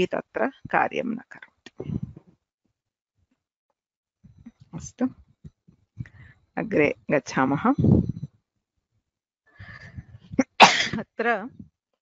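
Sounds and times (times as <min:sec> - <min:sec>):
woman sneezing: 0:10.4 - 0:11.0.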